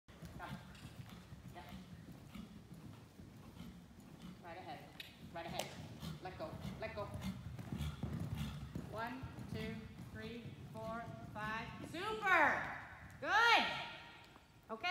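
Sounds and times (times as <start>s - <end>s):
horse hooves thudding on sand: 0.1s - 14.0s.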